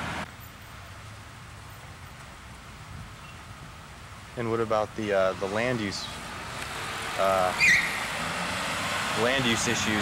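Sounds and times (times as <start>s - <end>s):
distant traffic hum: 0.0s - 10.0s
street traffic noise: 0.0s - 10.0s.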